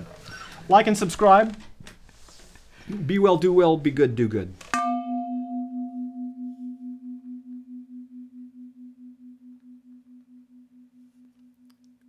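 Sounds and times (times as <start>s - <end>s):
bell-like note ringing: 4.8s - 12.0s.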